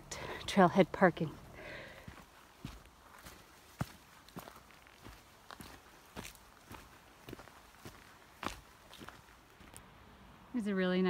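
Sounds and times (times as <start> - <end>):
faint footsteps on forest trail: 0.0 - 9.9.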